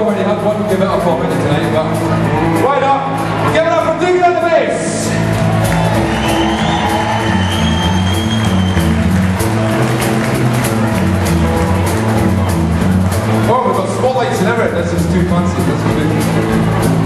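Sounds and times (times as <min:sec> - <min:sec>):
blues-rock band playing: 0:00.0 - 0:17.0.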